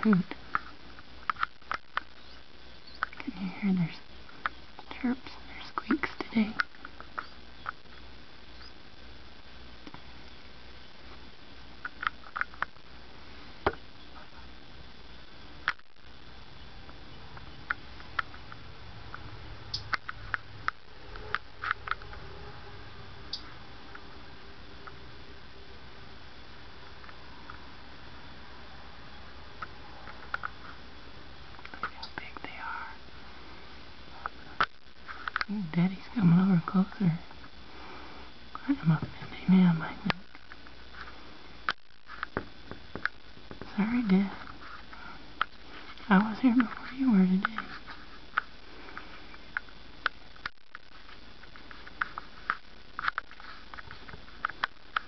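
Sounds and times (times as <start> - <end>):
birds squeaking and chirping: 7.2 - 8.8.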